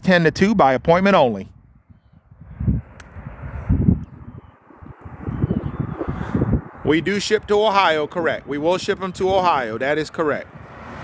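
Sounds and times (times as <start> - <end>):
wind buffeting microphone: 0.2 - 11.0
traffic rushing: 1.0 - 11.0.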